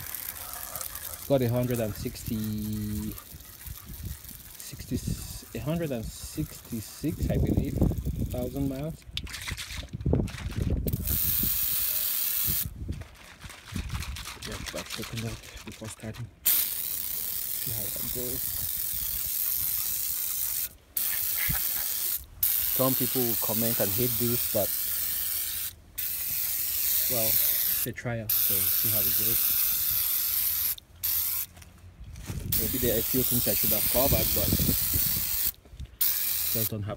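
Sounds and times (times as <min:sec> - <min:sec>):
aerosol can spraying: 0:11.0 - 0:12.7, 0:16.5 - 0:31.5, 0:32.5 - 0:36.7
handling and rustling: 0:12.6 - 0:16.4
aerosol can spraying hiss: 0:32.6 - 0:36.7.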